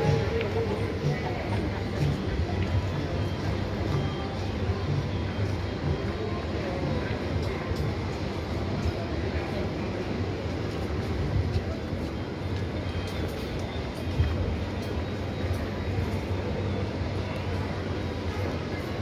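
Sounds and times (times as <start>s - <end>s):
background music: 0.0s - 9.8s
people's voices: 0.0s - 19.0s.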